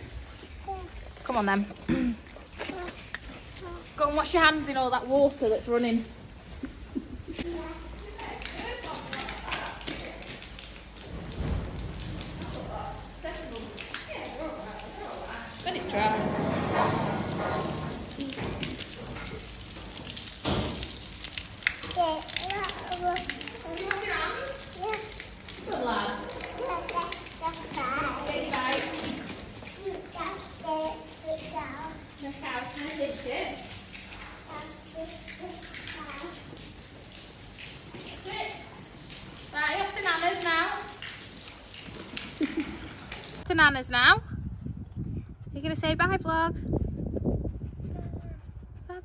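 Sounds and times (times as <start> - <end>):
water spattering on concrete: 0.0 - 43.7
toddler babbling and calling out: 0.4 - 1.2, 2.5 - 4.0, 7.4 - 8.0, 21.8 - 25.5, 26.2 - 28.5, 29.7 - 32.2, 34.2 - 36.5.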